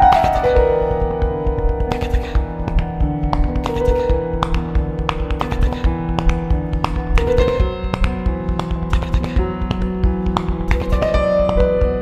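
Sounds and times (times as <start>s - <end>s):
piano notes: 0.0s - 12.0s
quick percussive taps: 0.0s - 12.0s.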